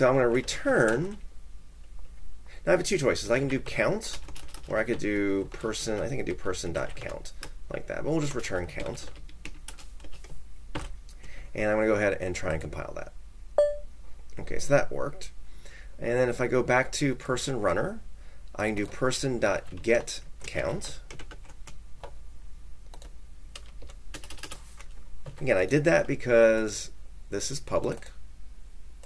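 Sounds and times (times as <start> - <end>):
typing on computer keyboard: 3.4 - 6.1, 6.8 - 7.5, 8.6 - 11.0, 19.6 - 22.1, 22.9 - 24.6.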